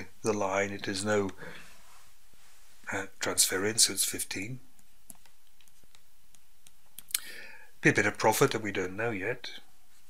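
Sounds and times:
man talking: 0.0 - 1.6, 2.8 - 4.6, 7.8 - 9.7.

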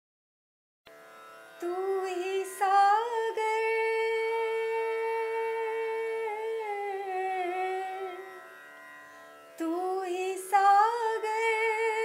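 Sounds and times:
woman singing a long note: 1.6 - 8.4.

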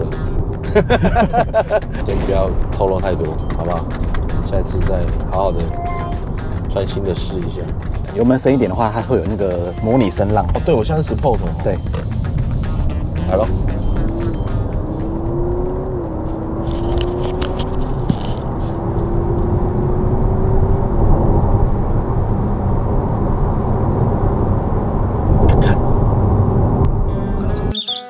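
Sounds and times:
car engine accelerating: 0.0 - 27.7
road rumble: 0.0 - 27.8.

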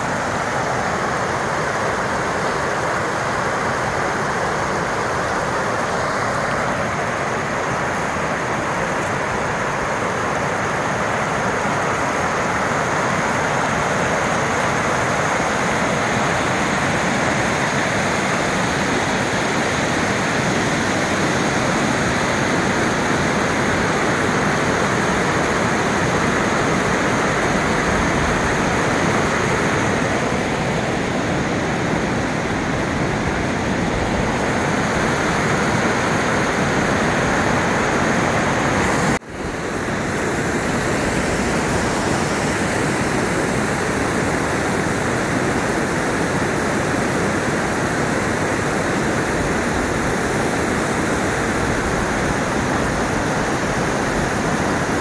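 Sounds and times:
waterfall roaring: 0.0 - 55.0.

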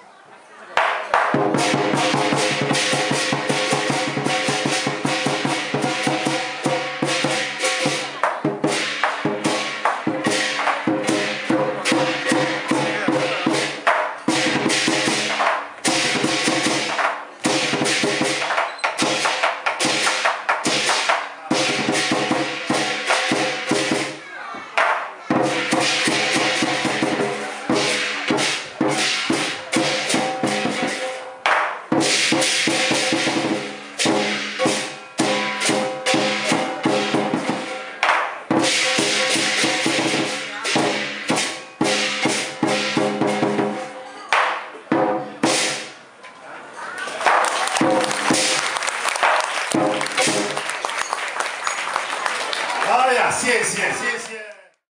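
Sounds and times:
drum beating fast rhythm: 0.8 - 24.2, 24.8 - 46.0, 47.1 - 54.4
cymbals crashing: 1.5 - 24.2, 25.3 - 44.0, 47.4 - 50.7
hand cymbals crashing: 25.4 - 43.9, 47.8 - 50.6.

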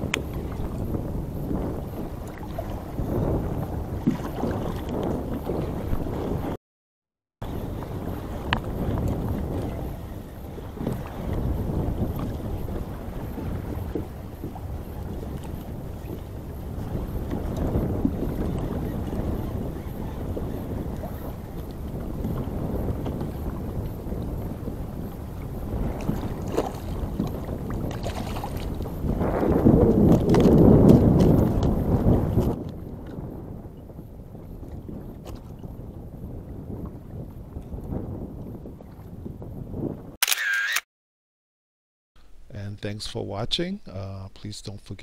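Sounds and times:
water lapping against a hull: 0.0 - 6.6, 7.4 - 40.2
wind buffeting the microphone: 0.0 - 6.6, 7.4 - 40.2.

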